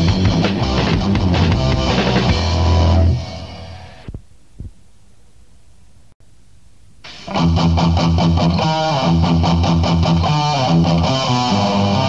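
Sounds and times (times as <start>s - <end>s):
heavy distorted metal guitar and bass: 0.0s - 4.2s, 7.1s - 12.0s
faint cassette hiss: 4.0s - 7.4s.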